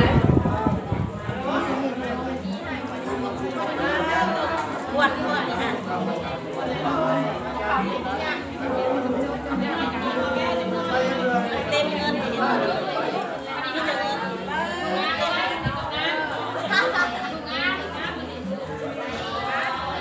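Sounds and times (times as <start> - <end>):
chatter of overlapping voices: 0.0 - 20.0.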